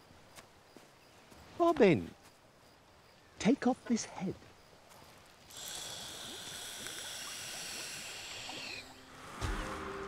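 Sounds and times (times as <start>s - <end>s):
person exhaling vapour: 5.5s - 8.9s
vape coil sizzling hiss: 5.5s - 8.9s
music: 9.2s - 10.0s.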